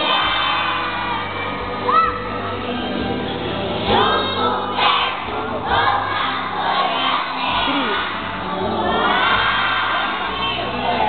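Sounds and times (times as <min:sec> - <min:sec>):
children singing and shouting: 0:00.0 - 0:02.7, 0:03.7 - 0:11.0
music: 0:00.0 - 0:11.0.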